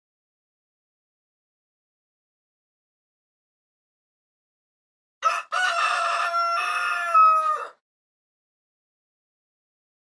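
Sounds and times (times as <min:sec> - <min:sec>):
rooster crowing: 0:05.2 - 0:07.8.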